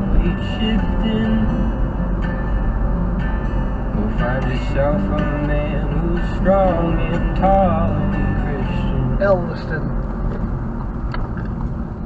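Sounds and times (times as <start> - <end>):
engine and tyre drone in car: 0.0 - 12.0.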